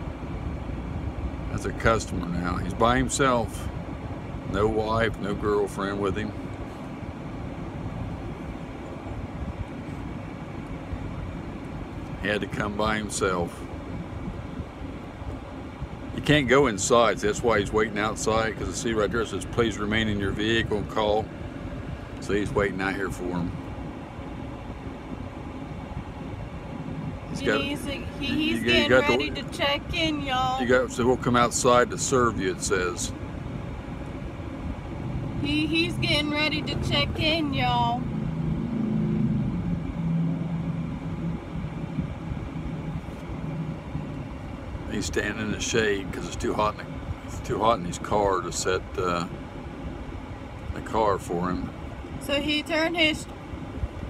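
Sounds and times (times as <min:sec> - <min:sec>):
car engine idling: 0:00.0 - 0:54.0
low rumbling background noise: 0:00.0 - 0:54.0.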